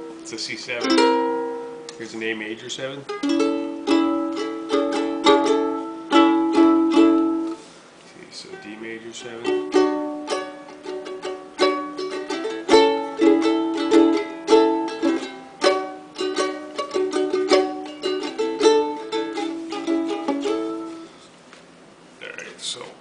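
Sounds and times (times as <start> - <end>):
ukulele strummed chords: 0.0 - 7.7, 8.5 - 21.1.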